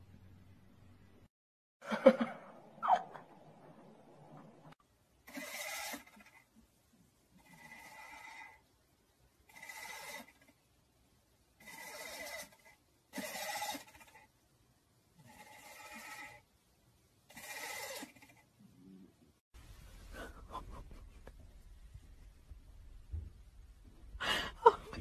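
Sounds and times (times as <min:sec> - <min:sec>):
cat snoring: 0:07.4 - 0:08.6, 0:09.5 - 0:10.4, 0:11.6 - 0:12.6, 0:15.2 - 0:16.4.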